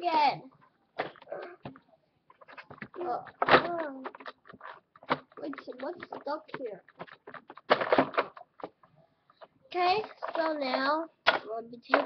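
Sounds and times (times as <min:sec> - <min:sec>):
microphone handling clicks and knocks: 0:00.6 - 0:12.0.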